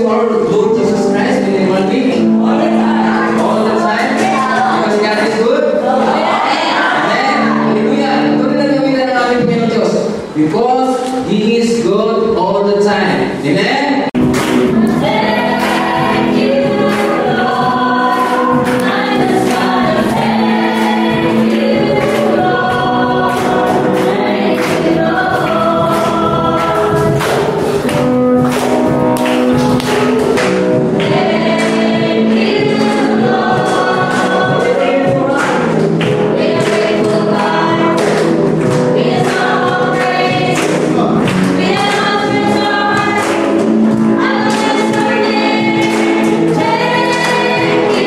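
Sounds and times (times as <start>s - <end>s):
congregation singing: 0.0s - 11.4s, 14.0s - 48.0s.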